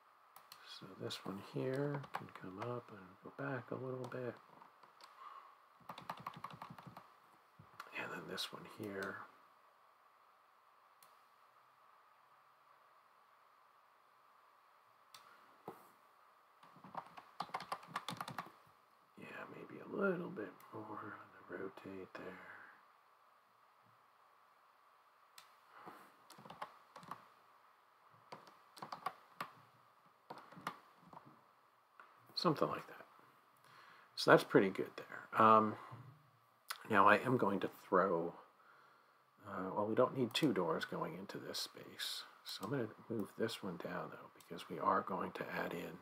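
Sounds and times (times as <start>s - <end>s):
faint room hiss: 0.0s - 46.0s
keyboard and mouse clicking: 1.7s - 2.7s, 5.8s - 7.1s, 16.6s - 18.6s, 26.3s - 27.3s, 28.3s - 29.6s, 30.3s - 31.3s.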